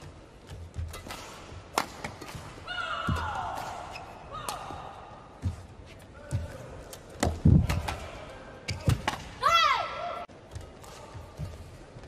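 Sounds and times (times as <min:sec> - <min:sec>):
racket striking shuttlecock: 0:00.8 - 0:04.6.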